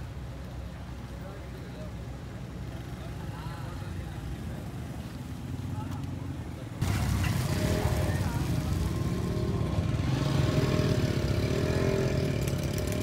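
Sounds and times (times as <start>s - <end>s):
distant voices: 0.1s - 13.0s.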